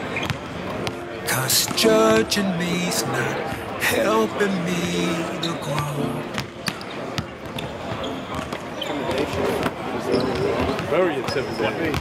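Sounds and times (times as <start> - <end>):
person speaking: 1.3 - 6.4.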